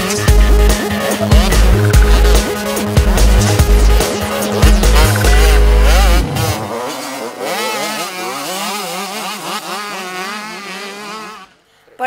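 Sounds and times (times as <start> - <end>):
electronic bass beat: 0.0 - 6.5
motocross bike engines revving: 0.0 - 12.0.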